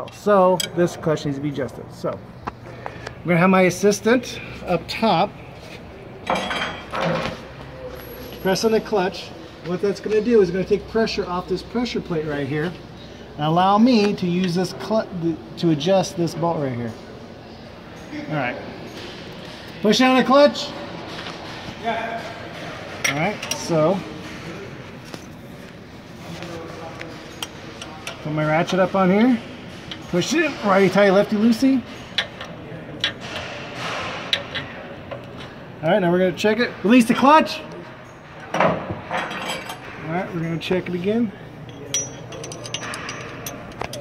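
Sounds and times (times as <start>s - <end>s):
steady background noise: 0.0s - 44.0s.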